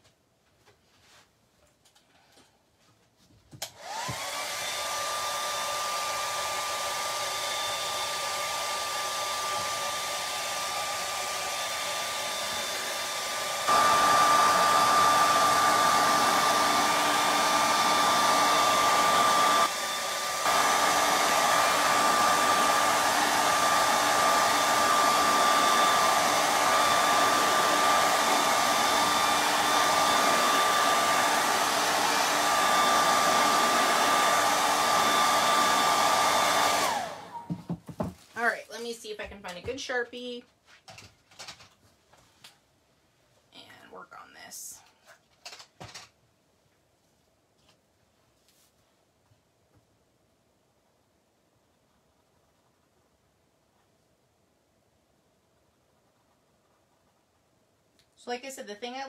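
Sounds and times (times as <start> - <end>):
hair dryer blowing: 3.6 - 39.6.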